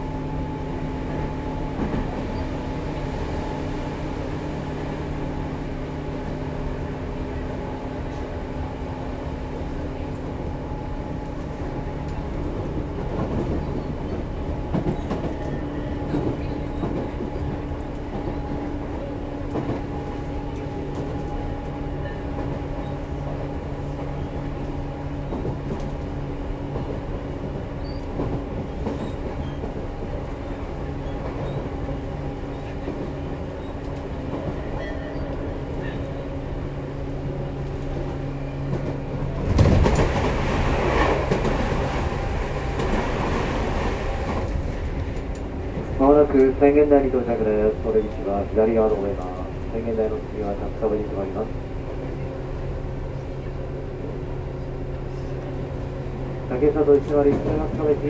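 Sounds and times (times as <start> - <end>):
electric train interior hum: 0.0 - 58.0.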